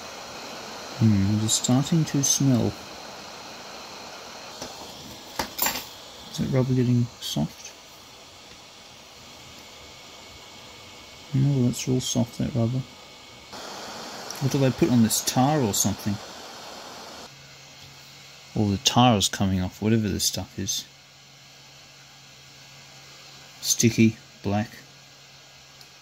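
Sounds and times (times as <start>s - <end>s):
hot air gun hissing: 0.0s - 17.3s
steady low hum: 0.0s - 17.4s.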